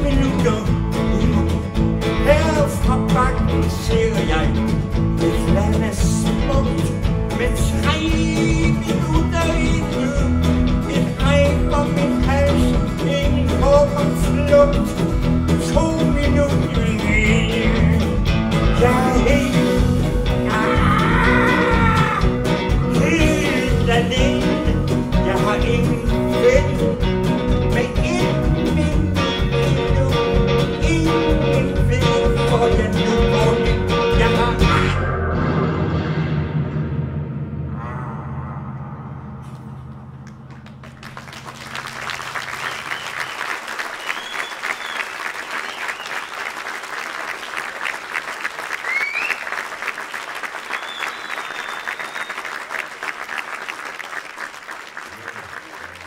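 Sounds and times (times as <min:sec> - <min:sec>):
man singing: 0:00.0 - 0:35.1
live band playing: 0:00.0 - 0:37.5, 0:40.1 - 0:46.0.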